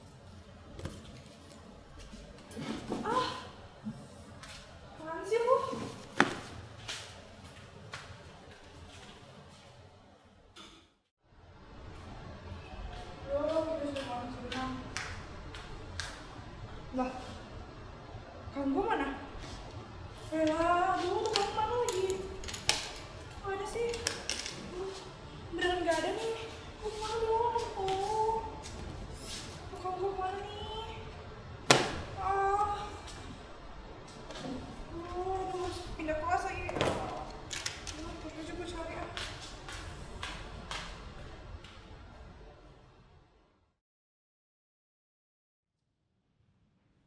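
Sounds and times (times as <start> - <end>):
handling and shuffling noise: 25.9 - 29.8.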